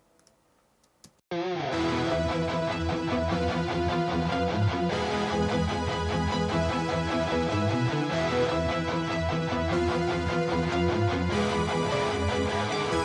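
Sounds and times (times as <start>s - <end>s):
electric rhythm guitar: 1.3s - 13.0s
synthesizer pad: 2.1s - 13.0s.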